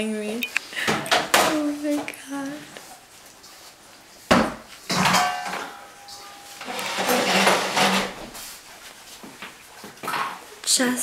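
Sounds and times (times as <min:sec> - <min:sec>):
rustling and handling noise: 0:00.4 - 0:10.7
thin squeaky tone: 0:05.8 - 0:07.5.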